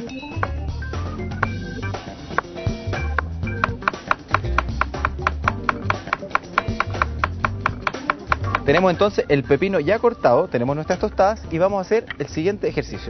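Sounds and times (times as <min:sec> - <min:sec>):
background music with bass line: 0:00.0 - 0:13.0.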